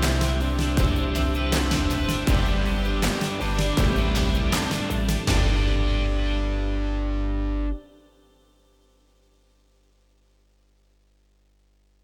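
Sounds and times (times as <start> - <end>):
guitar and synthesizer chord: 0.0 - 9.2.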